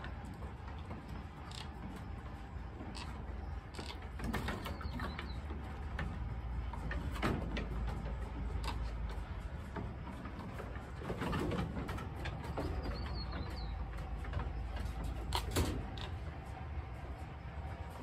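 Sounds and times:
hooves knocking on wooden boards: 0.0s - 18.0s.

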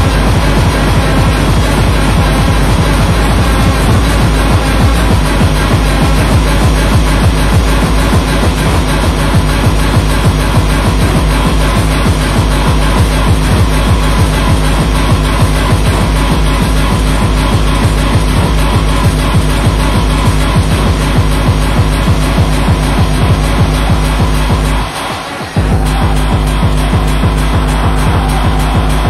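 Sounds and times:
fast kick-drum beat: 0.0s - 29.0s
techno music: 0.0s - 29.0s.

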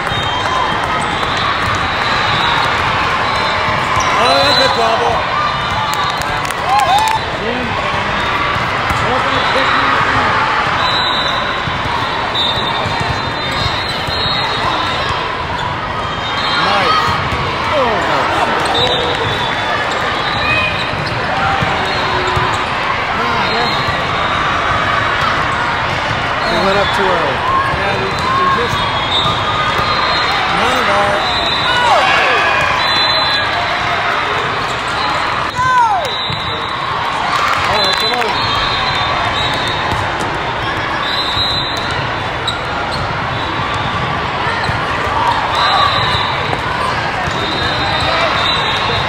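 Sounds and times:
sneakers squeaking on courts: 0.0s - 6.3s, 7.1s - 36.9s, 37.6s - 49.0s.

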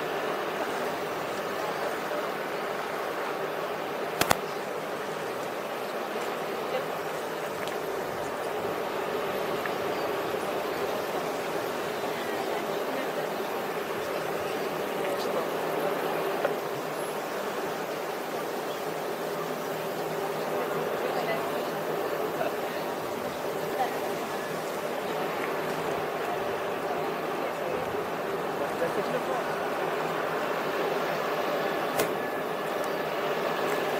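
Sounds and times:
steady rushing outdoor noise: 0.0s - 33.9s.

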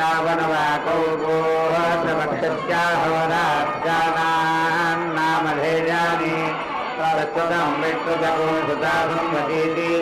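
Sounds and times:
man chanting mantras: 0.0s - 10.0s.

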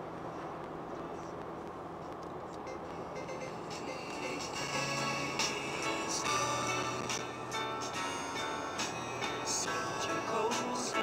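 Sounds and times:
car road and engine noise: 0.0s - 11.0s
music: 2.7s - 11.0s.

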